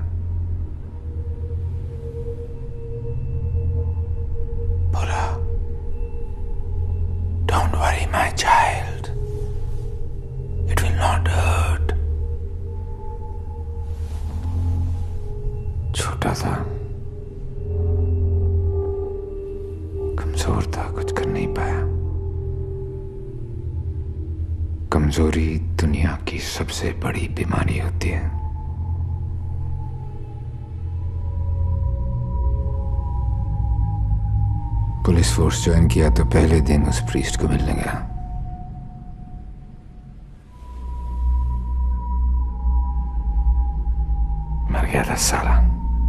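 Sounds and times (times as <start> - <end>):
low steady drone: 0.0 - 46.0
person whispering: 4.9 - 5.6, 7.5 - 9.6, 10.6 - 12.1, 15.9 - 17.0, 20.1 - 22.0, 24.9 - 28.4, 44.6 - 46.0.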